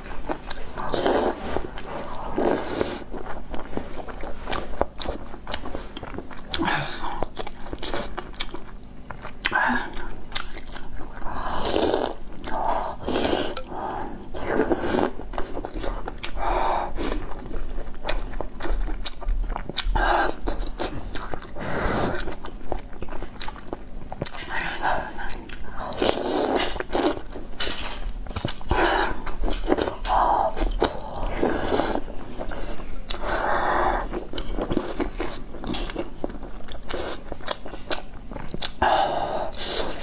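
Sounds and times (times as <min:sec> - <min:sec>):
wet chewing with smacking clicks: 0:03.2 - 0:11.4, 0:17.2 - 0:21.6, 0:22.2 - 0:31.4, 0:34.1 - 0:38.8.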